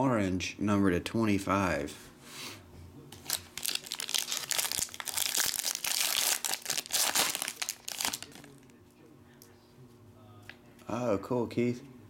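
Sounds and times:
foil wrapper tearing and crinkling: 3.2 - 8.6.

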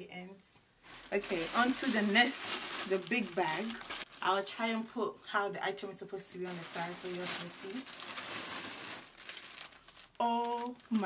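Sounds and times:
plastic bags crinkling: 0.8 - 5.0, 6.2 - 11.0.

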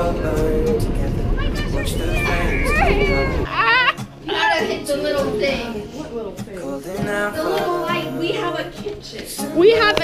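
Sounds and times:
low street noise: 0.0 - 10.0
girls shouting and squealing: 1.4 - 5.8.

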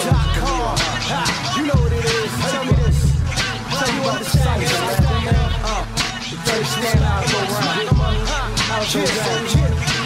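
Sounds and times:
hip hop beat with heavy bass drum: 0.0 - 10.0
rapping vocal: 0.0 - 10.0.

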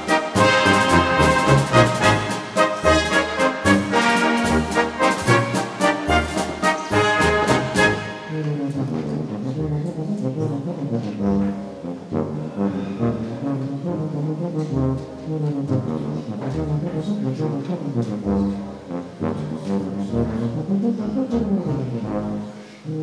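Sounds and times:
brass music with sustained chords: 0.0 - 23.0.

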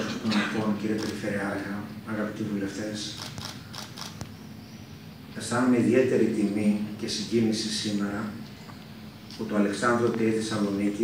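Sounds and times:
faint sharp clicks and creaks: 3.1 - 4.4.

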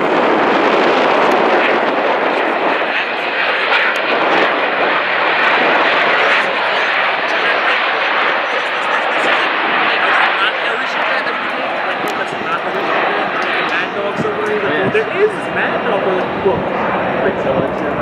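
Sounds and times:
jet engines running: 0.0 - 18.0.

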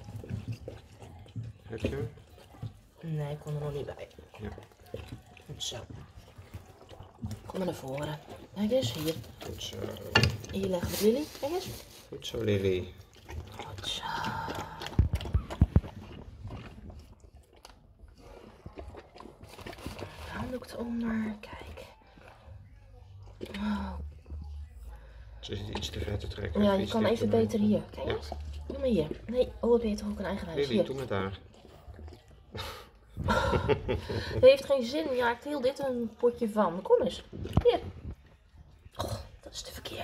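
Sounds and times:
dog licking and chewing: 0.0 - 40.0.

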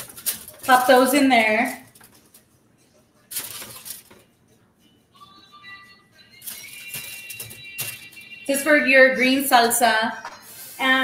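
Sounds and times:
aluminium foil crinkling: 0.0 - 2.6, 3.2 - 4.5, 6.3 - 8.8
quiet background music: 0.0 - 11.0.

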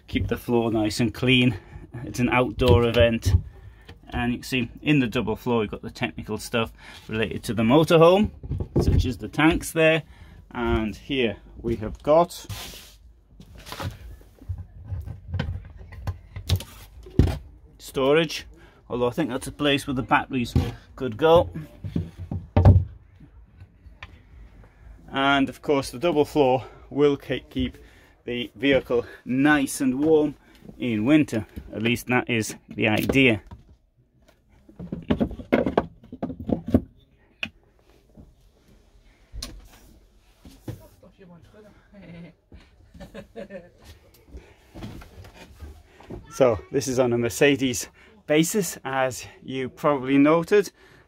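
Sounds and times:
floor hatch clicks and knocks: 34.7 - 36.9.

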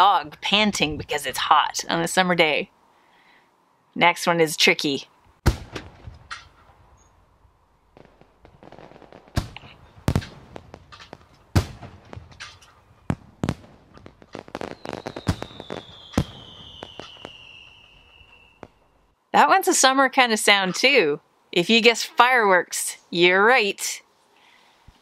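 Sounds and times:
fireworks bangs: 5.4 - 6.9, 7.9 - 19.0
fireworks crackling: 7.9 - 19.0
falling firework whistle: 14.4 - 19.1.

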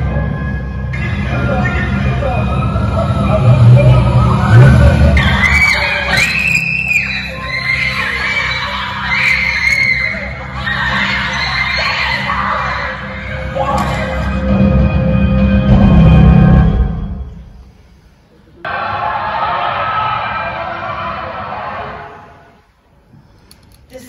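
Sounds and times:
background music: 0.0 - 17.6
women shouting and screaming: 4.0 - 14.4.

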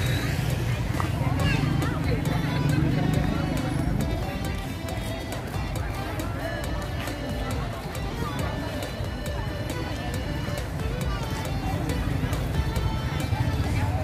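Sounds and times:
crowd chatter: 0.0 - 14.0
music with ticking beat: 0.0 - 14.0.

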